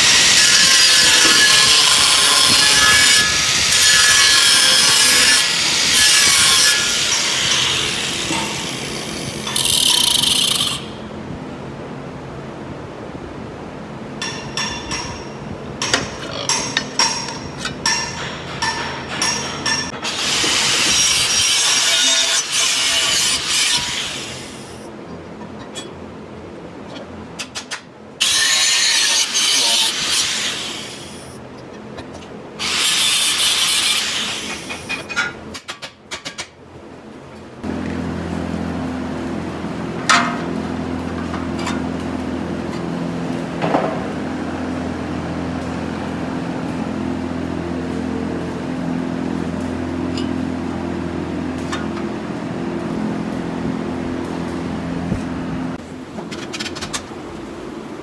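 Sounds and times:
angle grinder cutting metal: 0.0 - 11.0, 19.3 - 24.8, 28.2 - 31.3, 32.6 - 34.9.

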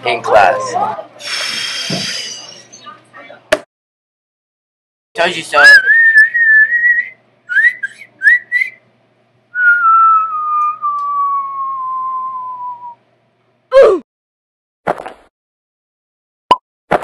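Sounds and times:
whistled cartoon sound effects: 5.6 - 8.8, 9.6 - 13.0.

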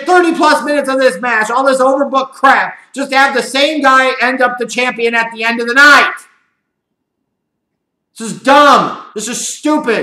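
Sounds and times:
man speaking loudly: 0.0 - 6.4, 8.2 - 10.0.

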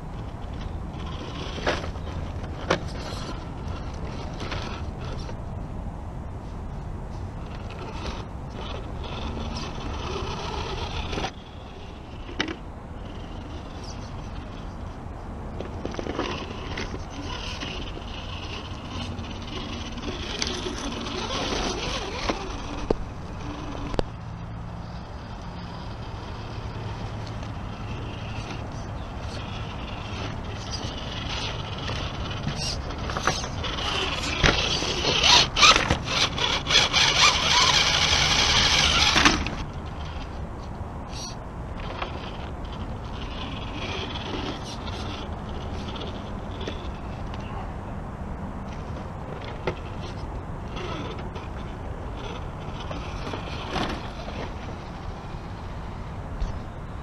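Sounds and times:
toy car electric motor whining: 0.0 - 5.4, 7.4 - 14.8, 15.6 - 24.1, 24.9 - 40.4, 41.1 - 47.4, 48.7 - 55.6
electric drivetrain whirring: 0.0 - 47.6, 48.2 - 57.0.

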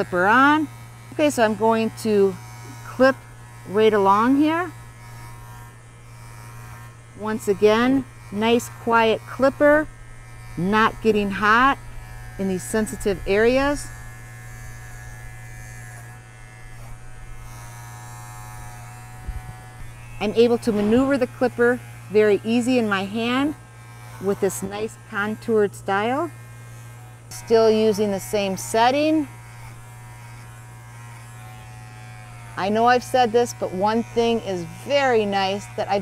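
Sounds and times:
hair clipper buzzing: 0.0 - 36.0.

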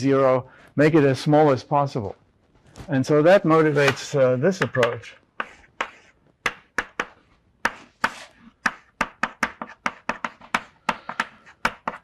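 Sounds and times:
chalk tapping on blackboard: 4.6 - 12.0.

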